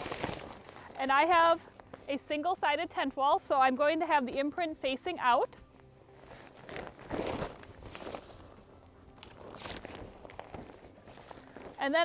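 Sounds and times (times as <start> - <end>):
fabric tent wall flapping: 0.0 - 2.1, 6.2 - 12.0.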